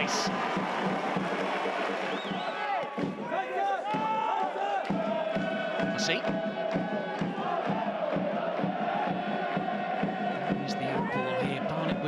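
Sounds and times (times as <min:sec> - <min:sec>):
crowd noise: 0:00.0 - 0:12.0
football crowd chanting: 0:00.0 - 0:12.0.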